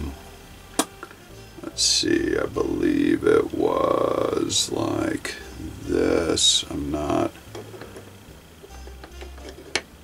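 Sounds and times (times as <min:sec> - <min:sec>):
wooden blocks knocking and rubbing: 0:07.5 - 0:10.0.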